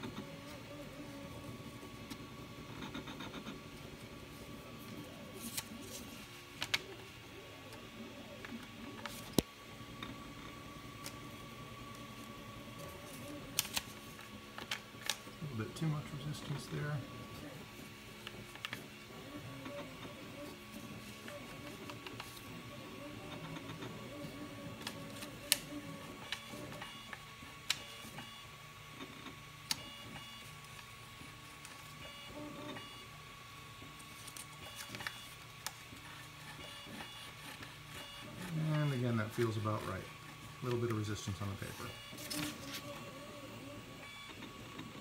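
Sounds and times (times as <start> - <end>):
faint steady whine: 0.0 - 45.0
printer humming: 0.0 - 45.0.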